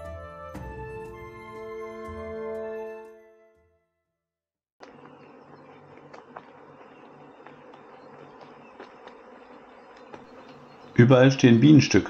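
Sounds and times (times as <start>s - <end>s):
bees buzzing: 4.8s - 12.0s.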